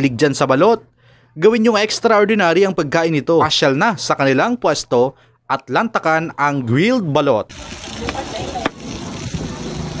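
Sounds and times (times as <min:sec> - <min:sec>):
low traffic rumble: 0:07.5 - 0:10.0.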